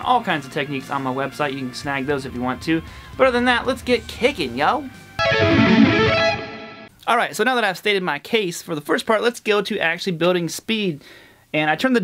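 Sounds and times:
electric guitar burst: 5.2 - 6.9.

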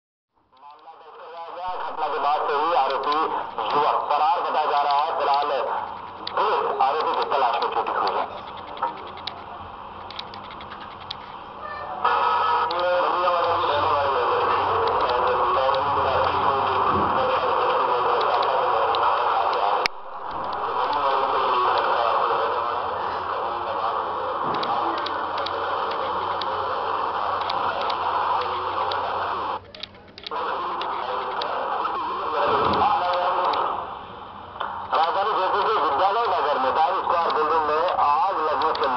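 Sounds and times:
television news talk: 0.6 - 38.9.

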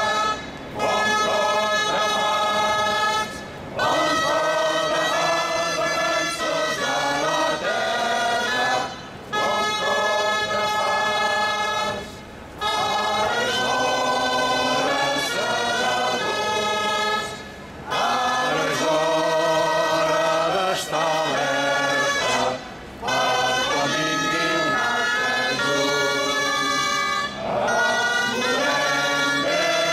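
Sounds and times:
many voices singing together: 0.0 - 29.9.

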